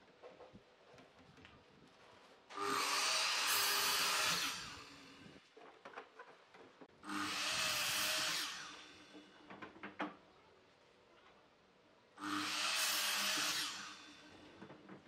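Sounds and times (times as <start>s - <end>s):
miter saw cutting wood: 2.5s - 5.3s, 7.0s - 9.3s, 12.2s - 14.4s.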